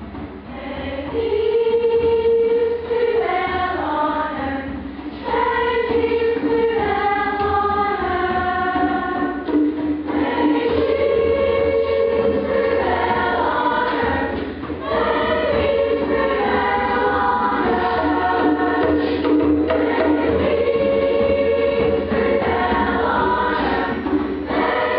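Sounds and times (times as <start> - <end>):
children's choir singing: 0.5 - 24.9.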